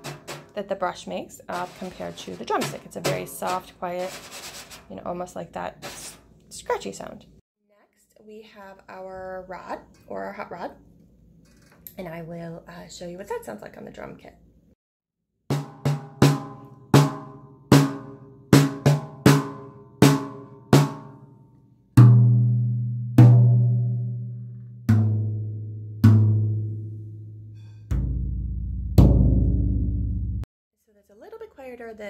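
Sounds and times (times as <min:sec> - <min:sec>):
rods hitting snare drum: 0:00.0 - 0:00.7, 0:01.6 - 0:04.8, 0:15.5 - 0:21.2, 0:22.0 - 0:24.3, 0:24.9 - 0:26.7, 0:27.9 - 0:29.6.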